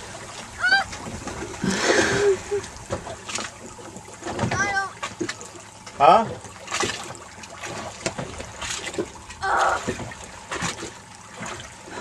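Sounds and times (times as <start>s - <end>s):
boat at sea: 0.0s - 12.0s.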